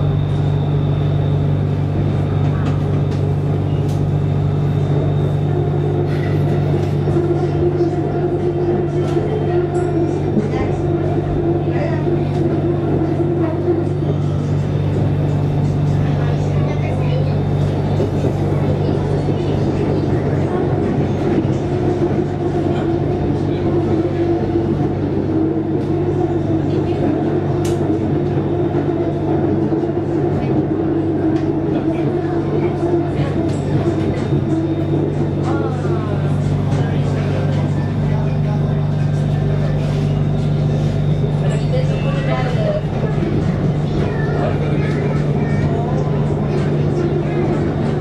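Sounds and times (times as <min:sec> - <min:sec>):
electric train running hum: 0:00.0 - 0:48.0.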